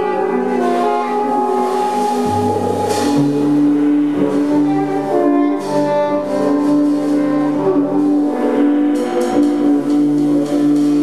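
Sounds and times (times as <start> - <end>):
free jazz quartet playing: 0.0 - 11.0
low bass note: 1.6 - 5.6.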